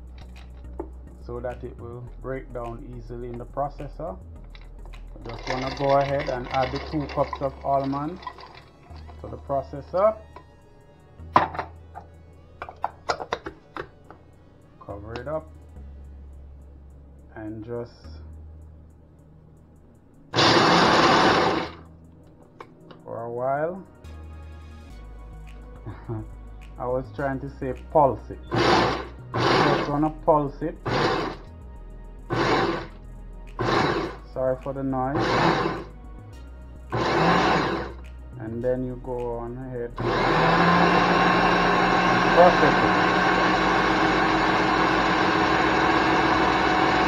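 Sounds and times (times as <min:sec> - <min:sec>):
food processor chopping nuts: 0:05.2 - 0:08.6, 0:20.4 - 0:21.8, 0:28.5 - 0:30.1, 0:30.8 - 0:31.5, 0:32.3 - 0:32.9, 0:33.6 - 0:34.2, 0:35.2 - 0:35.9, 0:36.9 - 0:38.0, 0:40.0 - 0:47.0
almonds shifting: 0:05.2 - 0:09.3
steady low hum: 0:14.2 - 0:22.4.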